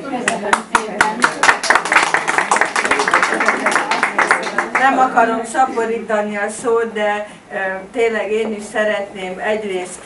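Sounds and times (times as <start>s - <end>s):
audience applauding: 0.3s - 5.0s.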